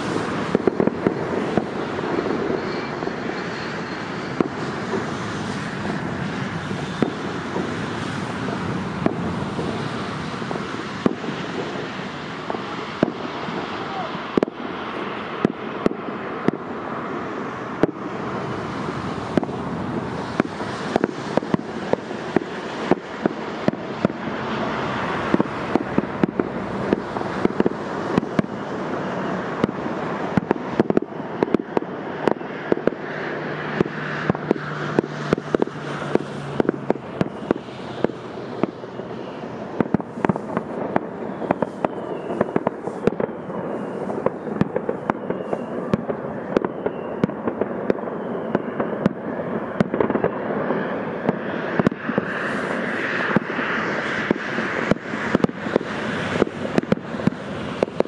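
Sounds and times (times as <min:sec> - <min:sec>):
fireworks shells bursting: 0:00.0 - 0:49.2
fireworks crackling: 0:00.0 - 0:58.0.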